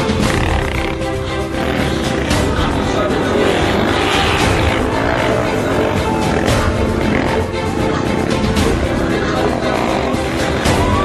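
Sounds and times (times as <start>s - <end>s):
loud music: 0.0s - 11.0s
motorcycle engine revving: 0.0s - 11.0s.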